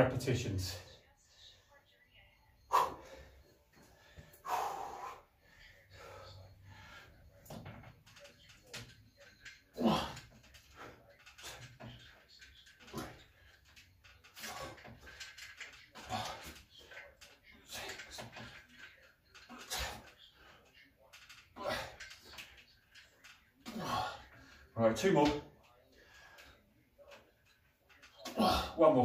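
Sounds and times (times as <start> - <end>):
man breathing hard: 2.7 - 7.3
man grunting with exertion: 9.8 - 10.2, 28.2 - 28.8.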